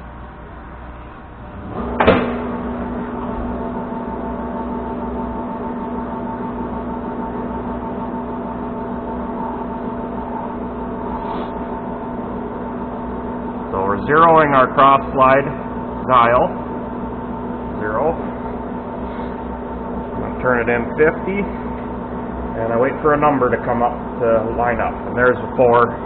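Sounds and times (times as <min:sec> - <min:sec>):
lathe humming and whining: 0:00.0 - 0:26.0
lathe starting clunk: 0:01.5 - 0:04.2.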